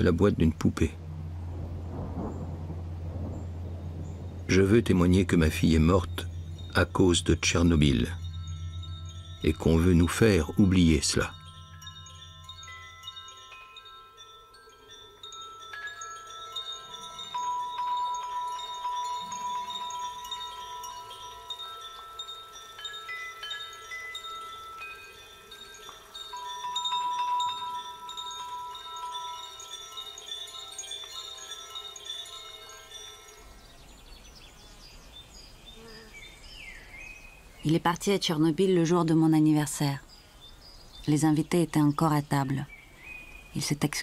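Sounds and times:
faint low rumble: 0.0s - 13.2s
chime-like ringing tones: 0.0s - 34.8s.

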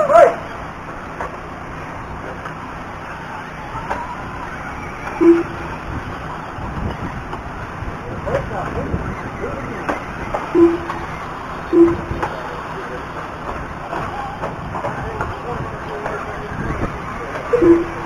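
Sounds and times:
outdoor background noise: 0.0s - 18.0s
short low beeps: 3.7s - 6.0s, 9.2s - 12.3s, 17.5s - 18.0s.

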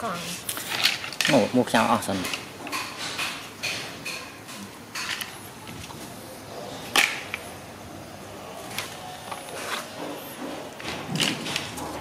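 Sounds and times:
plastic toy parts knocking and clicking: 2.1s - 5.4s, 10.8s - 11.9s.

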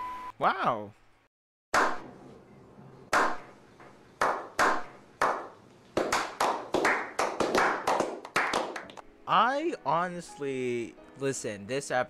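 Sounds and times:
hand claps with echo: 3.1s - 3.5s, 4.2s - 9.0s.

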